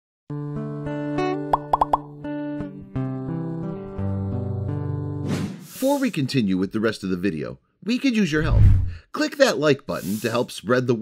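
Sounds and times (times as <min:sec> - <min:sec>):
upward-sliding cartoon pops: 0:01.5 - 0:02.1.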